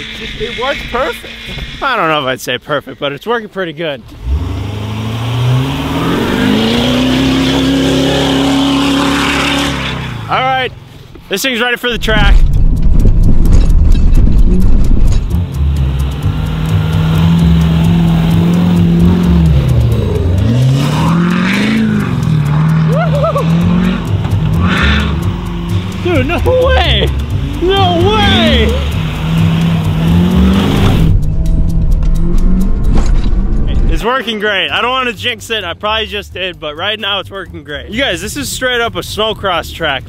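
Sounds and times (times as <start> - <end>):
truck engine revving: 0.0 - 2.3, 4.0 - 40.0
voices calling out: 22.4 - 30.8.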